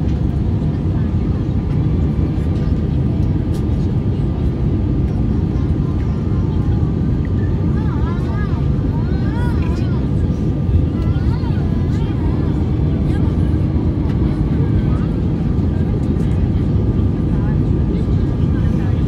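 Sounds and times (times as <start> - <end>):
airplane cabin noise: 0.0 - 19.0
faint passenger voices: 0.0 - 19.0.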